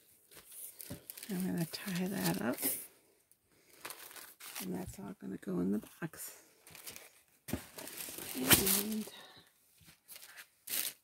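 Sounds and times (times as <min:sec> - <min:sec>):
paper gift bag rustling: 0:00.0 - 0:02.8, 0:03.6 - 0:05.1, 0:06.6 - 0:11.0.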